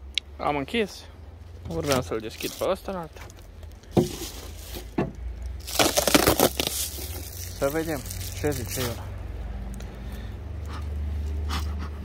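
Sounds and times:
bubble wrap crinkling: 1.7 - 9.1.

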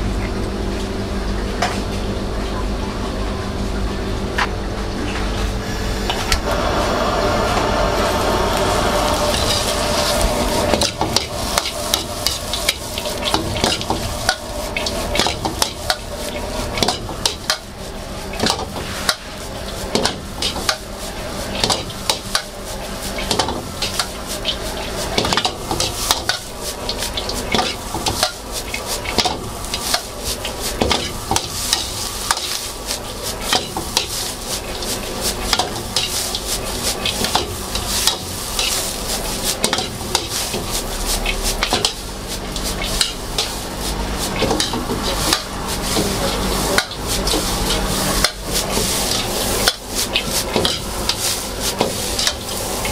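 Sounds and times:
steady sizzle: 5.6 - 52.9.

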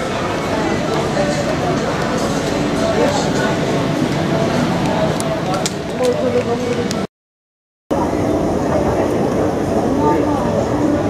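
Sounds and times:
steady rumbling in a hall: 0.0 - 7.1, 7.9 - 11.0.

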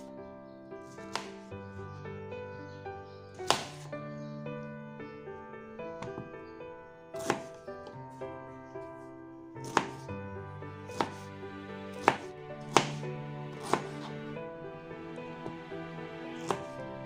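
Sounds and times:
background music: 0.0 - 17.0
knife knocking on cutting board: 6.0 - 6.3.

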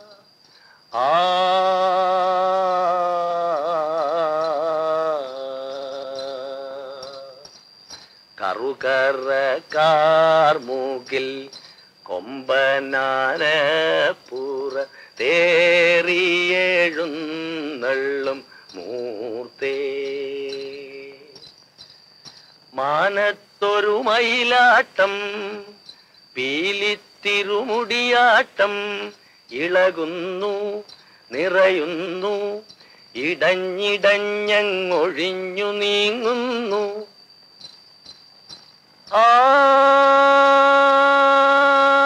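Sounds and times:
faint high-pitched trill: 0.0 - 42.0
man singing folk song: 0.9 - 7.5, 8.4 - 21.4, 22.7 - 37.2, 39.1 - 42.0
man singing long note: 1.0 - 7.4, 39.1 - 42.0.

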